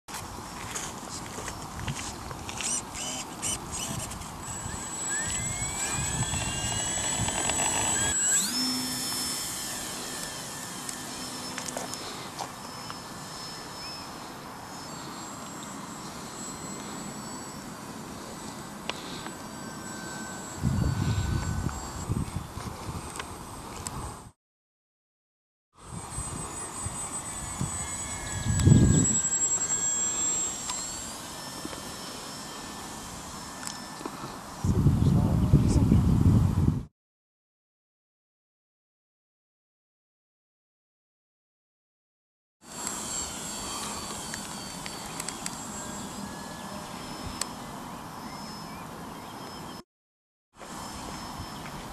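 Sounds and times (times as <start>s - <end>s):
model plane motor whine: 0.1s - 24.3s, 25.8s - 35.1s, 42.6s - 49.8s, 50.6s - 51.9s
wind rumble on microphone: 20.6s - 24.3s, 34.6s - 36.9s.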